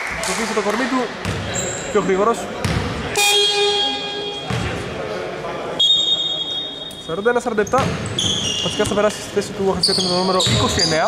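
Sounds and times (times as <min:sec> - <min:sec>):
buzzer horn: 0:03.2 - 0:04.6
referee's whistle blast: 0:03.2 - 0:04.6.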